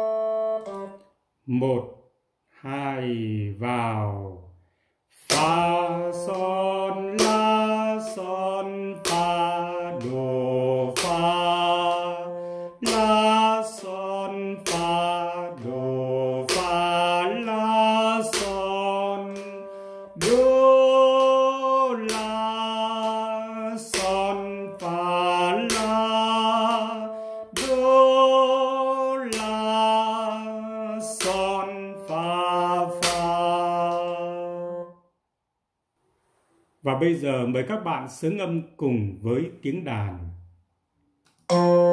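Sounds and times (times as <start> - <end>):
man singing syllables: 0.0 - 1.9, 5.1 - 34.9.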